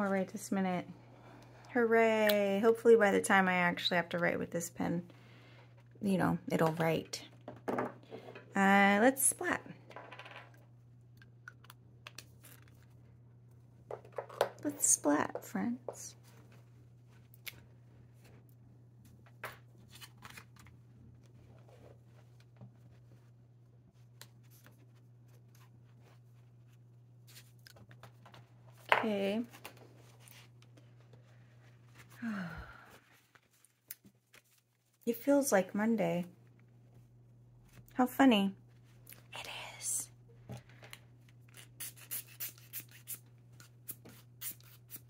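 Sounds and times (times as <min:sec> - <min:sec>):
person sighing: 0:32.1 - 0:33.1.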